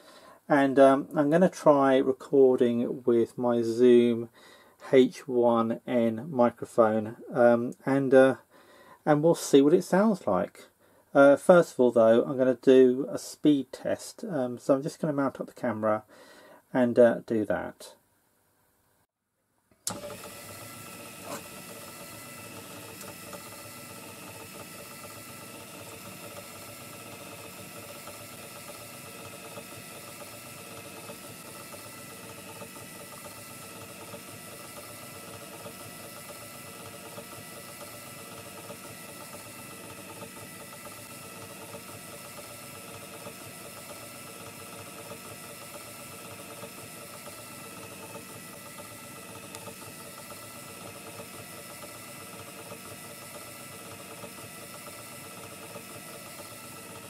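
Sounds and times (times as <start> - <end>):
gramophone motor running: 19.8 - 57.0.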